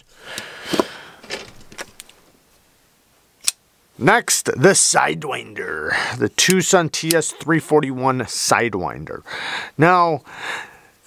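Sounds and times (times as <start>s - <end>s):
folding knife rustle: 0.4s - 2.2s.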